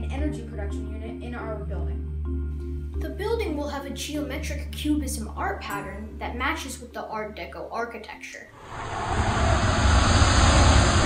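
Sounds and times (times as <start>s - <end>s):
rocket engine roar: 8.6s - 11.0s.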